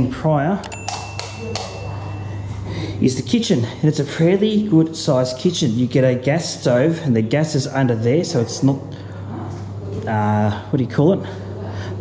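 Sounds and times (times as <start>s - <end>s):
steady low hum: 0.0s - 12.0s
thin ringing tone: 0.6s - 3.6s.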